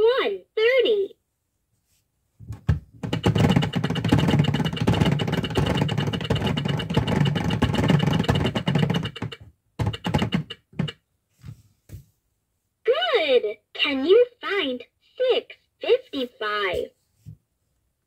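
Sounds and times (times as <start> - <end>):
toy clock gears clicking: 3.1 - 10.9.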